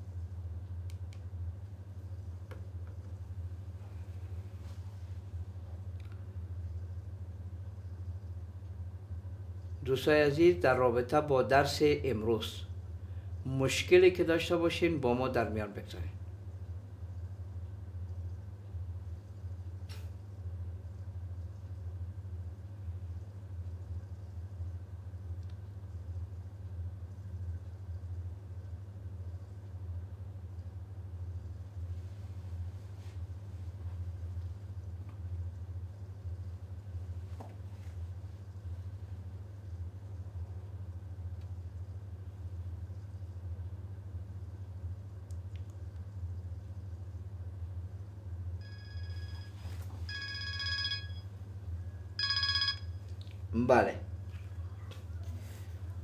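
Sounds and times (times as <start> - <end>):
low hum with faint hiss: 0.0 - 56.0
phone ringtone warbling: 48.6 - 51.3, 52.2 - 52.9.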